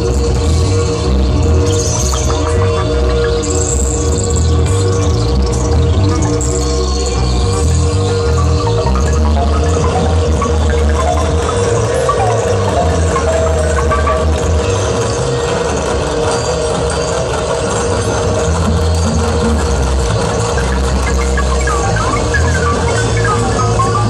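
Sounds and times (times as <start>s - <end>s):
heavy bass drone: 0.0s - 24.0s
held middle synth note: 6.2s - 15.0s.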